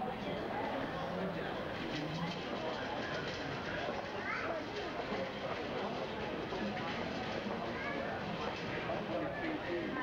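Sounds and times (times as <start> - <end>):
many overlapping voices talking: 0.0 - 10.0
high-pitched child's voice: 4.2 - 4.6.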